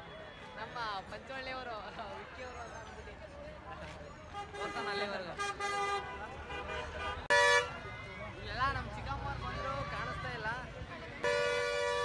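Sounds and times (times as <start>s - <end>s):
crowd chatter: 0.0s - 12.0s
vehicle horn toot: 4.4s - 7.8s, 11.2s - 12.0s.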